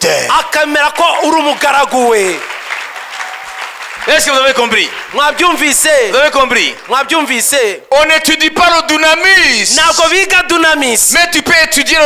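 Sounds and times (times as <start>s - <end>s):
man's voice: 0.0s - 2.5s, 4.0s - 12.0s
audience clapping: 0.6s - 7.7s.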